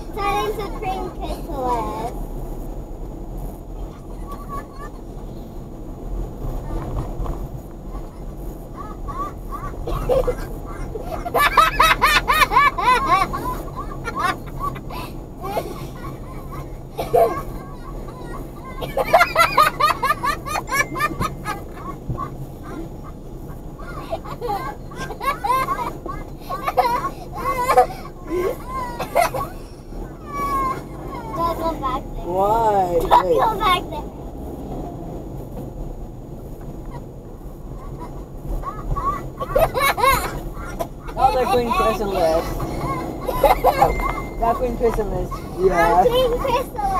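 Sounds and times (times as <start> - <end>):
car hum on the road: 0.0 - 46.9
people laughing: 9.1 - 22.9, 24.0 - 29.7, 39.4 - 46.9.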